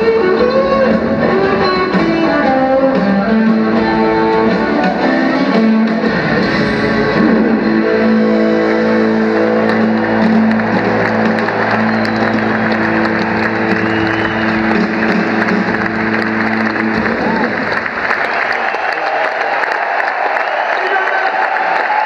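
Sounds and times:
audience applause: 8.6 - 22.0.

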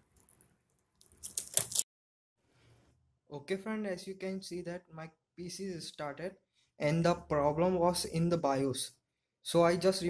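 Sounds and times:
plastic film crinkling: 0.1 - 1.8.

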